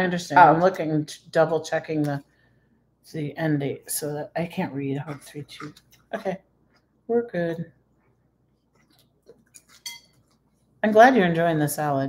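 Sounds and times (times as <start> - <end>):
fork clinking on plate: 9.6 - 10.3.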